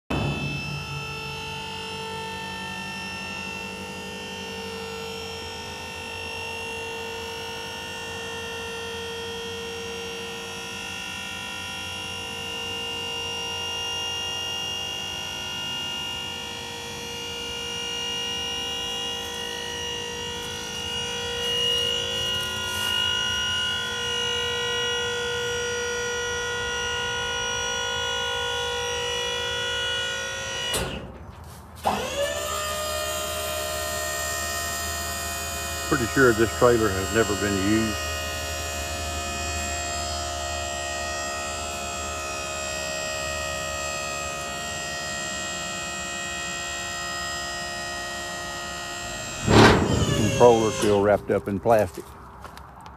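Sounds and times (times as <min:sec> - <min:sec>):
hydraulic pump whine: 0:00.0 - 0:51.8.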